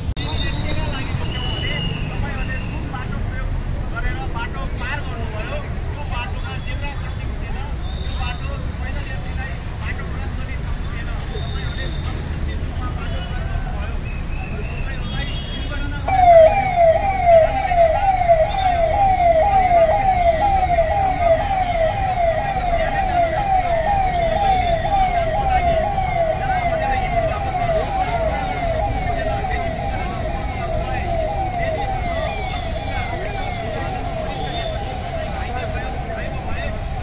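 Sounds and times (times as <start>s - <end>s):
crowd noise: 0.0s - 37.0s
traffic noise: 0.0s - 37.0s
megaphone siren wailing: 16.0s - 37.0s.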